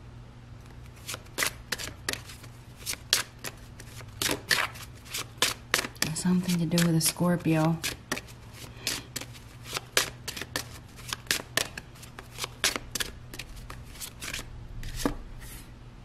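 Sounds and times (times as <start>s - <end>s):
cards being shuffled: 0.6s - 15.6s.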